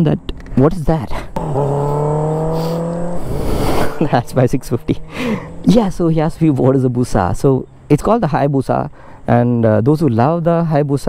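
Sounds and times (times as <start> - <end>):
vehicle engine: 1.4 - 7.3.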